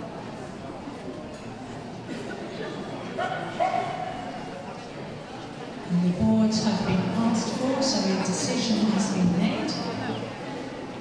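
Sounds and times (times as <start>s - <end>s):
crowd murmur in a hall: 0.0s - 11.0s.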